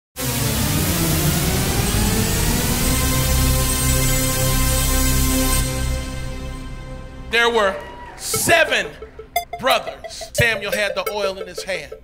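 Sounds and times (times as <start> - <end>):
loud electronic music: 7.6 - 12.0.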